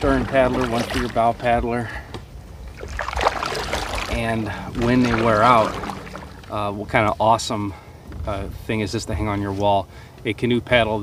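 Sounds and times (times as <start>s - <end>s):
paddle splashing water: 0.0s - 7.2s
low steady rumble: 0.0s - 11.0s.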